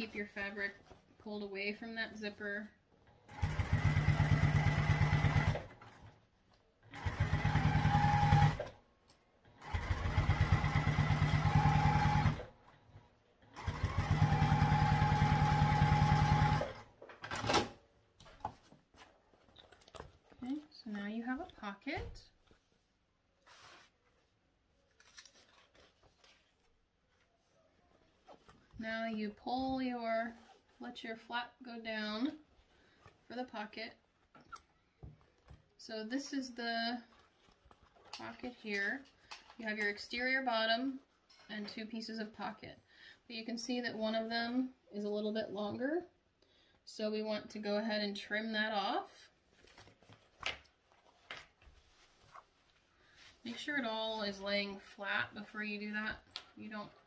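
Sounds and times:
fabric rustling: 22.4 - 29.0, 49.4 - 54.6.

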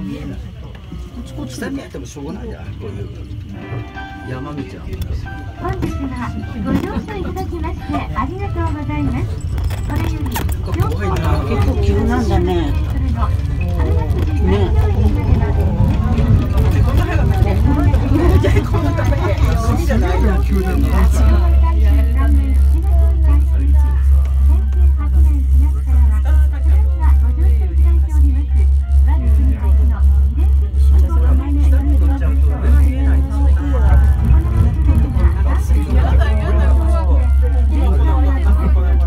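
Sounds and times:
gondola cabin rumble: 0.0 - 39.0
people talking: 0.0 - 39.0.

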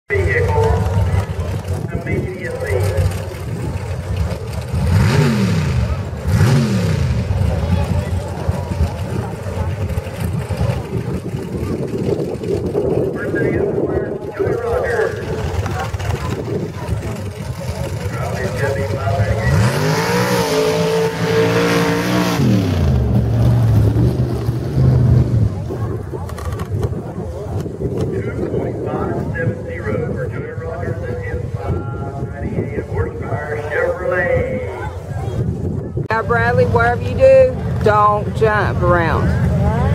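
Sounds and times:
truck engine revving: 0.1 - 13.3, 14.3 - 26.9
crowd chatter: 0.1 - 21.6, 22.5 - 39.9.

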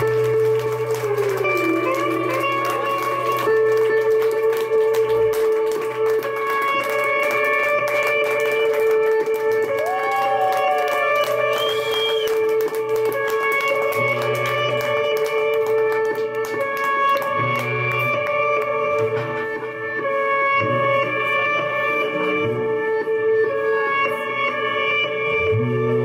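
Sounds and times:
bass line: 0.0 - 4.1
droning electric guitars: 0.0 - 26.0.

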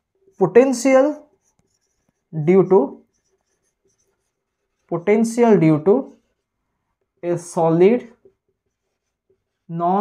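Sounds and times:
marker writing on whiteboard: 0.0 - 10.0
man speaking: 0.4 - 1.3, 2.3 - 3.1, 4.9 - 6.2, 7.2 - 8.2, 9.7 - 10.0.

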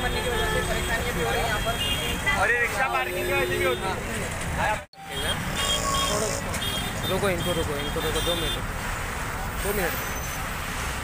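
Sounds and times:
congested road traffic: 0.0 - 11.0.

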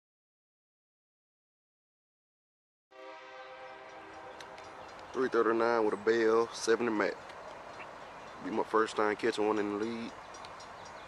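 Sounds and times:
locomotive air horn chord: 2.9 - 5.4.

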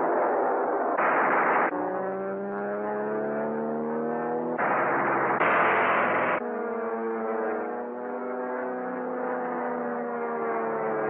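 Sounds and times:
machine-gun fire: 1.0 - 1.8, 4.6 - 6.4
propeller airplane engine droning: 1.7 - 11.0.

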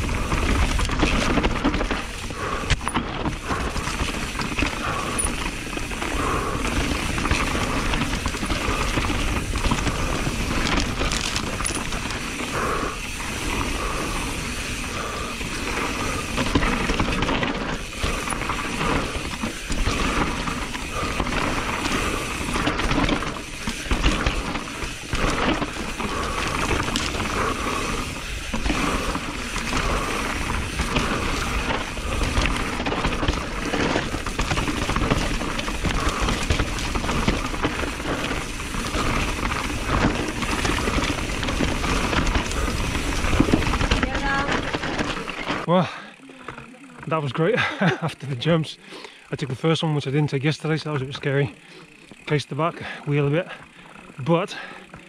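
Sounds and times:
bike chain and frame rattle: 0.0 - 55.0
bike tyre noise on dirt: 0.0 - 55.0.

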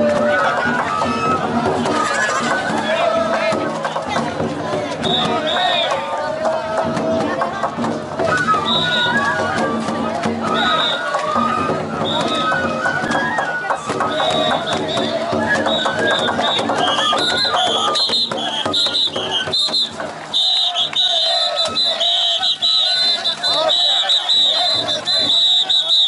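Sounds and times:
drum and gong strikes: 0.0 - 20.3, 24.6 - 25.7
crowd voices: 0.0 - 26.0
high flute melody: 8.2 - 26.0.

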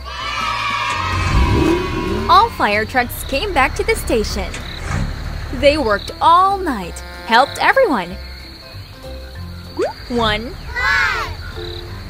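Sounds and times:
soft background music: 5.4 - 12.0.

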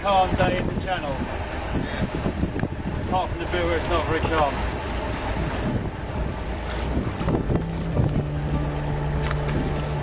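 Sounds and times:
boat engine: 0.0 - 10.0
choppy sea: 0.0 - 10.0
wind buffeting microphone: 0.0 - 10.0
steady sustained music: 6.0 - 10.0.

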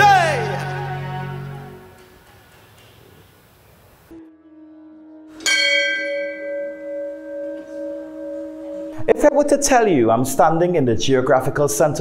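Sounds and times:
bell ringing: 5.4 - 9.3.

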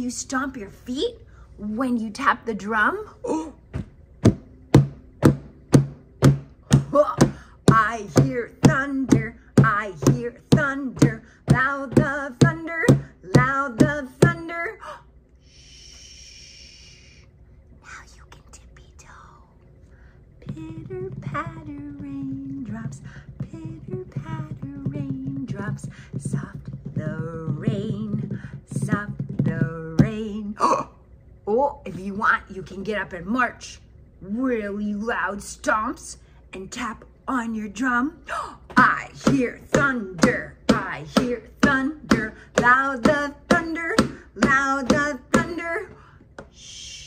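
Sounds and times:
woman chanting: 0.0 - 3.6, 6.7 - 17.2, 20.4 - 47.0
hands tapping like drum: 3.8 - 14.4, 38.8 - 45.7
person singing softly: 6.7 - 17.2, 20.4 - 30.9, 36.6 - 47.0.

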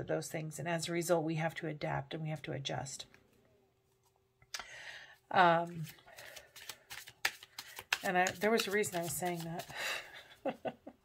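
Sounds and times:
cards being shuffled: 5.8 - 9.9.

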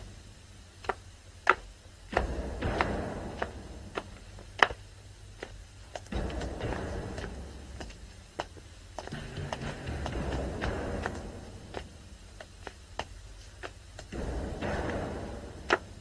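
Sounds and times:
sharp clicks and taps: 0.8 - 16.0
low rumble: 2.0 - 16.0.

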